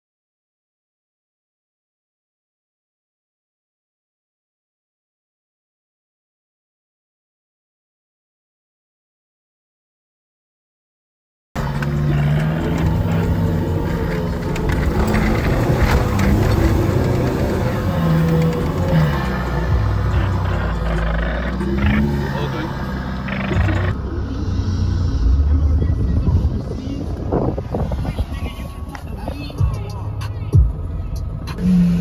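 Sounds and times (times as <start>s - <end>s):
people's voices: 11.6s - 32.0s
vehicle engine running: 11.6s - 32.0s
music: 28.5s - 32.0s.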